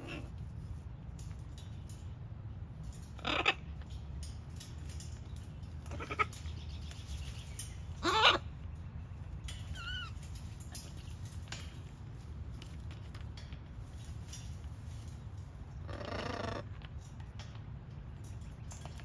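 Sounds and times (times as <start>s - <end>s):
low steady background rumble: 0.0s - 19.0s
macaw calls: 8.0s - 8.5s.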